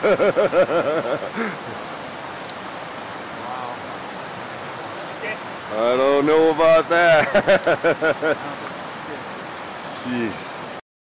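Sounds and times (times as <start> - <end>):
man laughing: 0.0 - 1.8, 7.0 - 8.6
creek running over rocks: 0.0 - 10.8.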